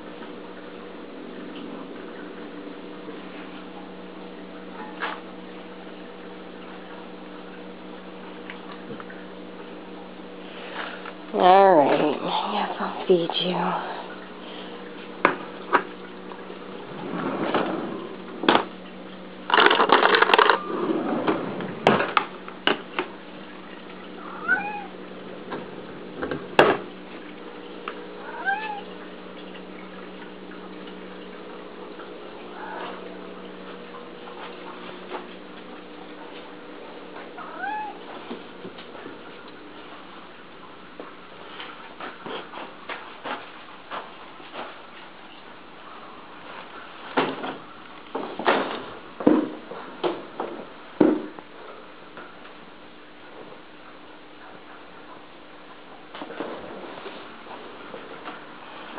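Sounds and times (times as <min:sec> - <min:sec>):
steady low hum: 0:00.0 - 0:58.9
cats meowing: 0:24.2 - 0:25.0, 0:28.2 - 0:28.9, 0:37.4 - 0:38.0.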